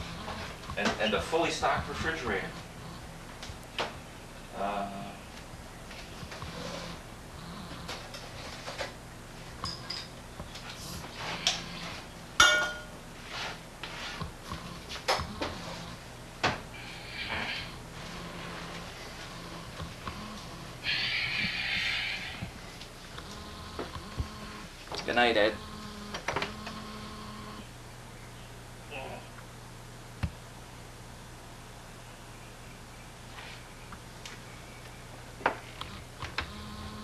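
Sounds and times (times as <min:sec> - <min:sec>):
low electrical hum: 0:00.0 - 0:37.0
glass bottles clinking: 0:12.4 - 0:12.9.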